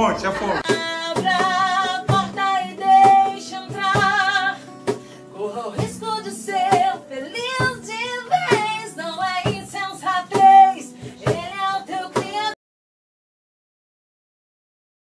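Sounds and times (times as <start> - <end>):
woman singing gospel: 0.6 - 12.6.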